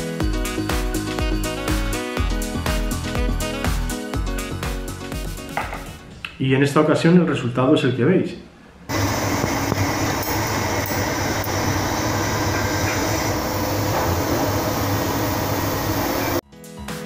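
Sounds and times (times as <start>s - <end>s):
music: 0.0s - 6.5s, 9.2s - 17.0s
workshop noise: 5.5s - 6.8s, 8.7s - 16.4s.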